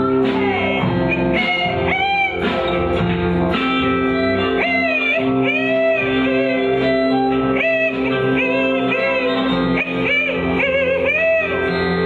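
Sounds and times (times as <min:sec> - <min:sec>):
strummed electric guitar: 0:00.0 - 0:12.0.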